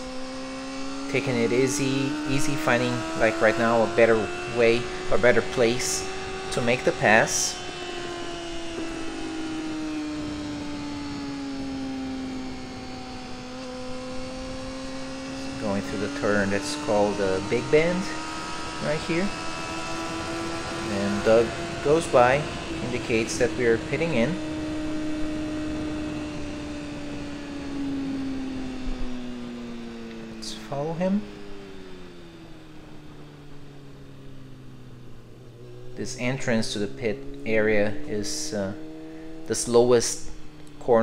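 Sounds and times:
motorcycle engine at speed: 0:00.0 - 0:41.0
wind noise: 0:02.6 - 0:29.5.

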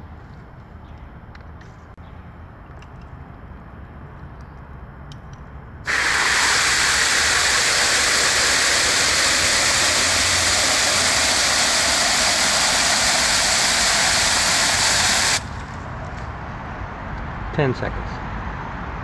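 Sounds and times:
hose water splashing into metal bucket: 0:05.9 - 0:15.6.

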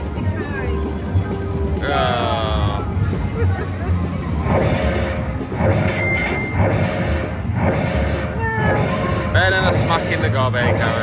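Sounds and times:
slot machine win jingle: 0:04.8 - 0:07.0.

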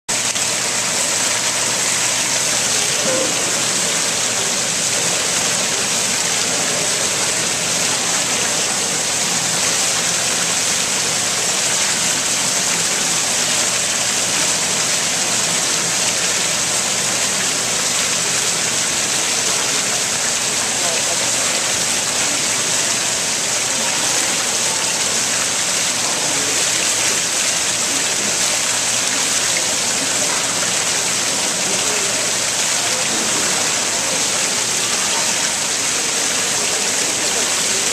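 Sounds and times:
fountain water splashing into pool: 0:00.1 - 0:37.9.

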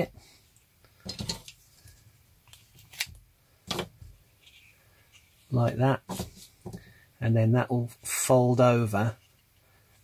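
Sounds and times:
tape crackling and clicking: 0:00.8 - 0:04.0.

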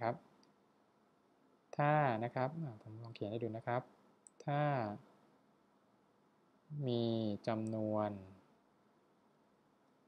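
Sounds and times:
man speaking: 0:00.0 - 0:00.2, 0:01.8 - 0:05.0, 0:06.7 - 0:08.4.

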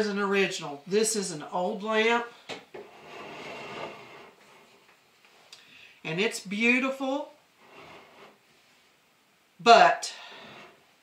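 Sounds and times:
glass lamp scraping on wooden table: 0:02.8 - 0:04.8, 0:07.6 - 0:08.4, 0:10.4 - 0:10.8.

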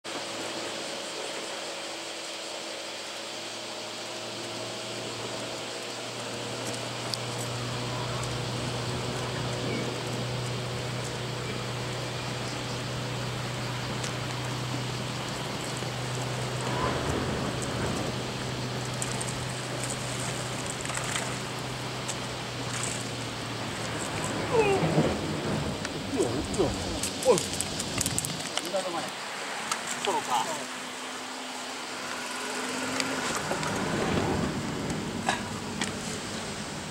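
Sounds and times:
sea waves washing: 0:07.0 - 0:36.9
brief voices: 0:24.4 - 0:25.2, 0:26.1 - 0:27.6.

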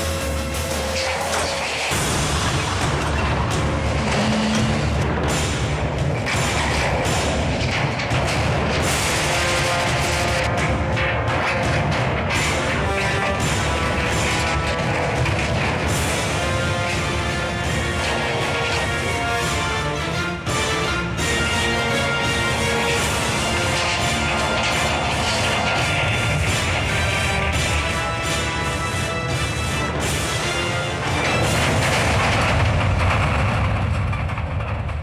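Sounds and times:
dramatic background music: 0:00.0 - 0:35.0.

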